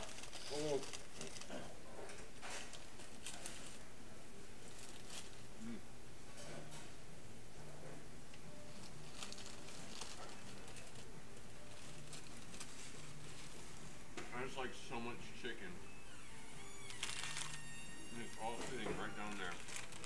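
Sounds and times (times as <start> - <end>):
paper bags crinkling: 0.0 - 1.6, 2.4 - 3.8, 4.6 - 5.5, 8.7 - 13.8, 16.8 - 20.0.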